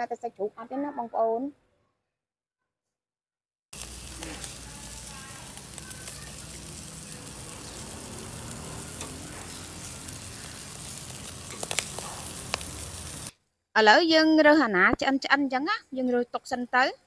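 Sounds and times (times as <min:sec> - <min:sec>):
sausages sizzling on a grill: 0:03.8 - 0:13.3
crackles and pops: 0:03.8 - 0:13.4.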